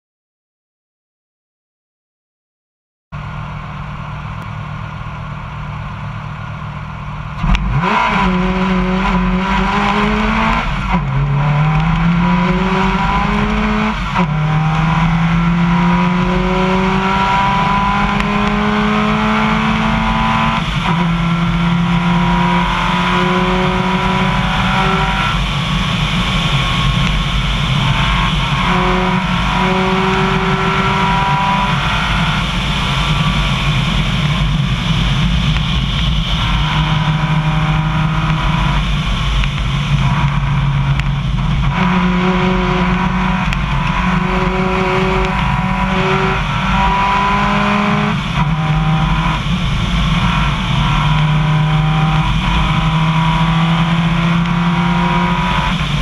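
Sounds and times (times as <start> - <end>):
car engine accelerating hard: 3.2 - 56.0.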